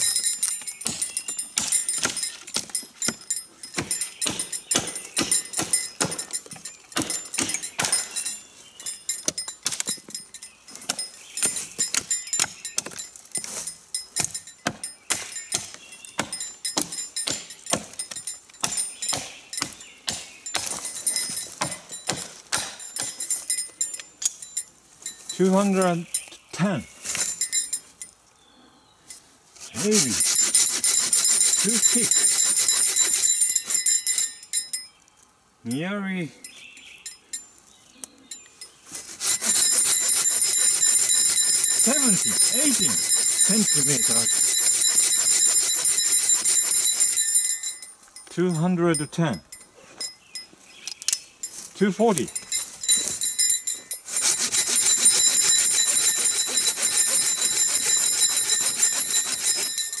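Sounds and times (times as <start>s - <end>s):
pruning saw cutting log: 0.0s - 8.4s, 10.7s - 23.2s, 29.6s - 34.3s, 39.0s - 47.7s, 52.1s - 60.0s
pull saw cutting through log: 29.7s - 34.0s, 39.1s - 47.6s, 54.0s - 60.0s.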